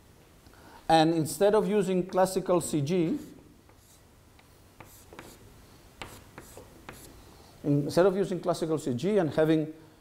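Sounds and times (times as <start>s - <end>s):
chalk strokes on chalkboard: 3.0s - 4.1s, 4.8s - 7.3s.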